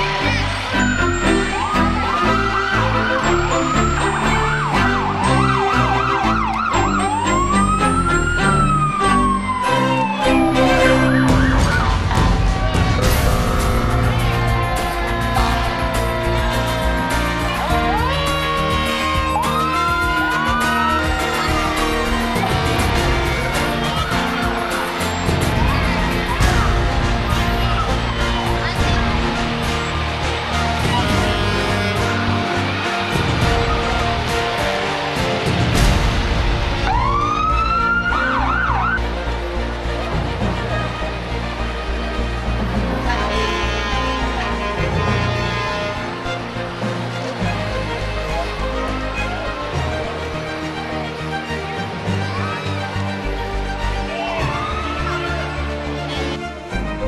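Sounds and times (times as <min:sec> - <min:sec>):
emergency vehicle siren: 0:00.0 - 0:56.5
music: 0:00.0 - 0:57.0.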